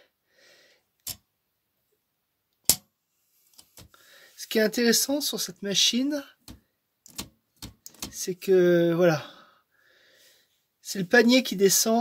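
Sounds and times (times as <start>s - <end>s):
typewriter mechanical clicks: 7.1s - 8.2s.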